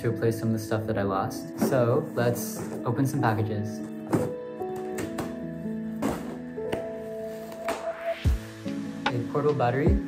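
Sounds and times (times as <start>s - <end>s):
soft keyboard music: 0.0s - 10.0s.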